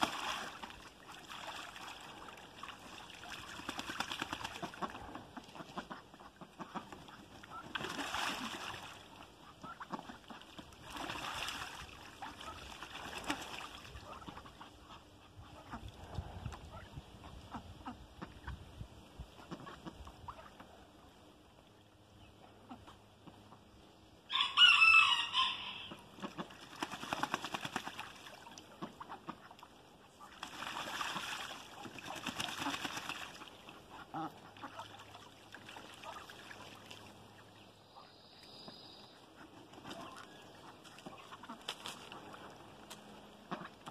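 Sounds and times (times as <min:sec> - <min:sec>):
ducks calling softly: 0:03.8 - 0:43.9
duck quack: 0:04.5 - 0:08.7, 0:09.4 - 0:10.6, 0:19.4 - 0:20.7, 0:25.1 - 0:26.6, 0:28.7 - 0:30.4, 0:31.1 - 0:35.1, 0:39.2 - 0:42.6, 0:43.4 - 0:43.9.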